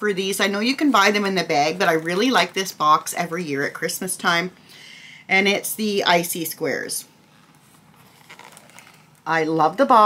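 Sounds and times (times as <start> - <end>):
cardboard box rustling: 7.3 - 9.2.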